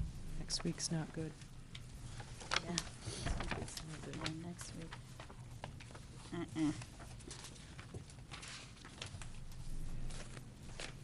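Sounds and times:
steady low hum: 0.0 - 11.0
paper rustling: 0.5 - 11.0.

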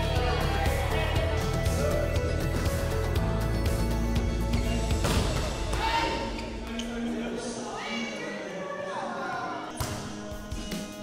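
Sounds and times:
voices in a gym hall: 0.0 - 3.1, 4.6 - 11.0
background music: 0.0 - 11.0.

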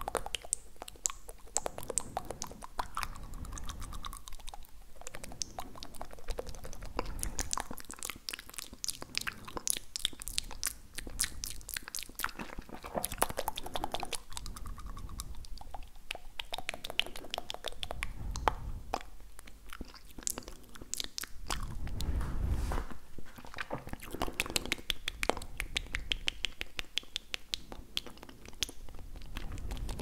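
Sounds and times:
wet tongue clicks and mouth sounds: 0.0 - 22.1, 23.3 - 30.0.

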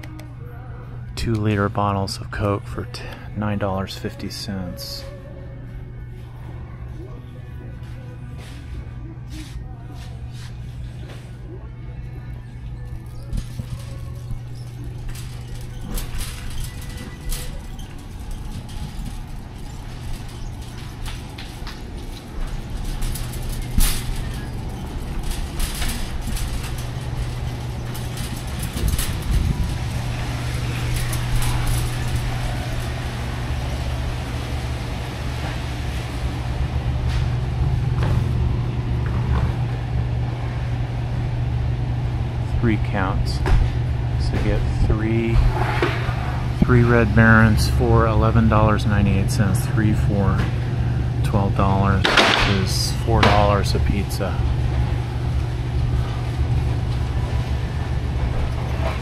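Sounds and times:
background music: 0.0 - 27.6
low steady hum: 0.0 - 59.0
shopping cart clicks and rattles: 12.8 - 37.3, 51.3 - 59.0.

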